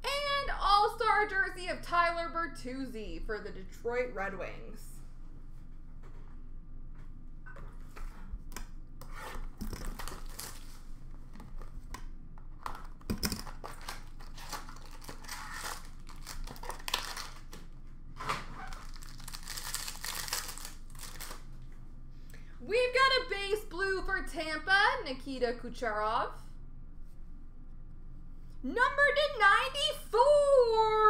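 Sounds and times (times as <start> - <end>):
wrappers being torn and crinkled: 9.6 - 10.8, 13.2 - 17.6, 18.5 - 21.5.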